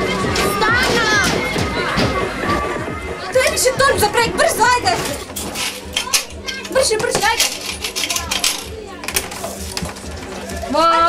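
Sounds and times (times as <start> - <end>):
coins clinking on counter: 5.4 - 9.9.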